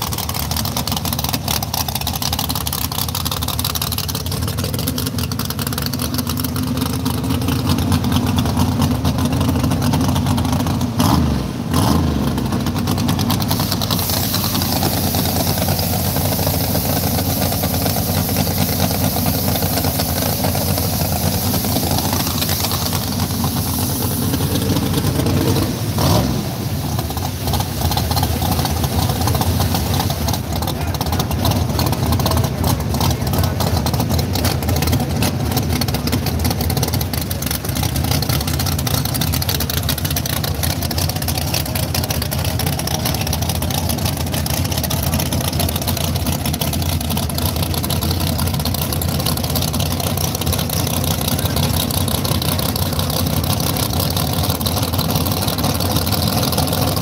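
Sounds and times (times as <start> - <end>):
drag car engine idling: 0.0 - 57.0.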